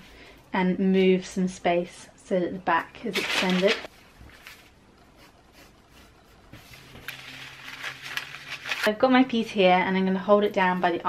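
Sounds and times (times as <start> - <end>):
paper rustling: 3.1 - 4.7, 6.6 - 8.9.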